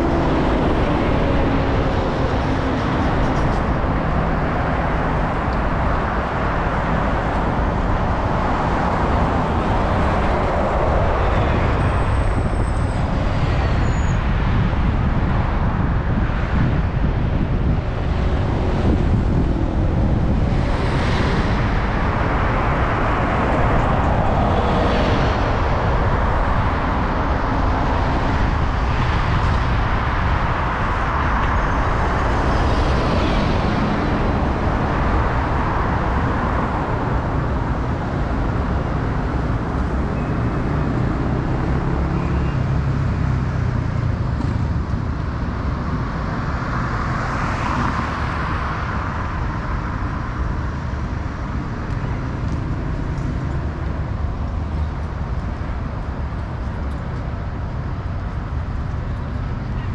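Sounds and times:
bus passing close: 0.0 - 59.9
city road traffic: 0.0 - 59.9
wind rumble on microphone: 0.0 - 59.9.

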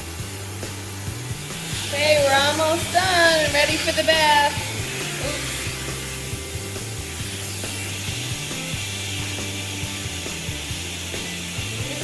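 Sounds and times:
background music: 0.0 - 12.0
electric clippers buzzing: 0.0 - 12.0.

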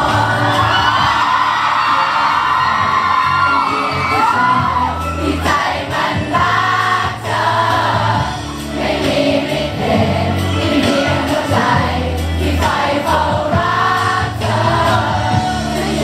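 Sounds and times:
crowd shouting: 0.0 - 7.4
pop backing track: 0.0 - 16.0.

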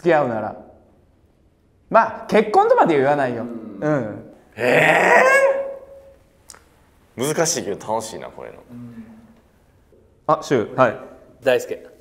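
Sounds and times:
man's hesitant eeh: 3.4 - 6.1, 8.7 - 9.4.

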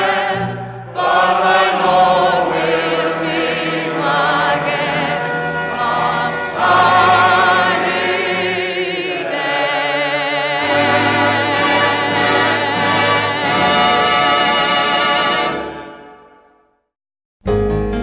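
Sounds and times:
choir singing held notes: 0.0 - 16.4.

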